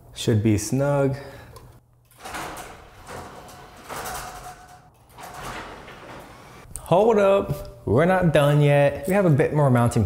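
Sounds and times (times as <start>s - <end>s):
garage door opener rumbling: 2.1s - 6.7s.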